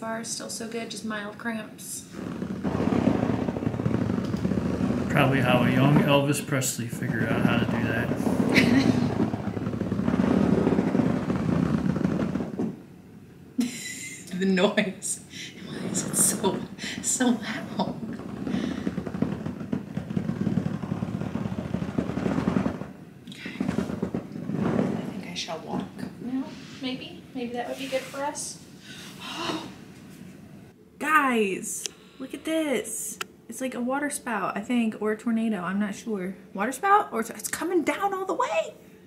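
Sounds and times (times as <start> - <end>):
rubber ball rolling and rubbing: 1.8 - 13.0, 15.6 - 28.6.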